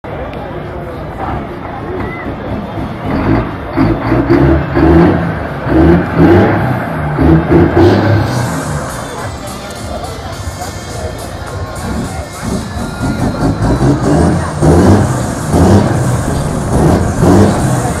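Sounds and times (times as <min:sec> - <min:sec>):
people's voices: 0:00.0 - 0:18.0
diesel truck engine revving: 0:00.9 - 0:18.0.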